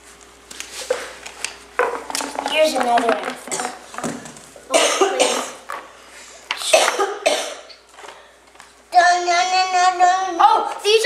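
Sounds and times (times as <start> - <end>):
person coughing: 4.7 - 5.6, 6.6 - 7.7.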